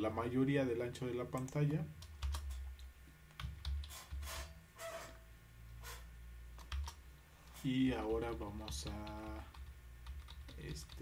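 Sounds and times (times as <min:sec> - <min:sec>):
computer keyboard typing: 0:01.4 - 0:02.7, 0:03.3 - 0:04.4, 0:06.6 - 0:11.0.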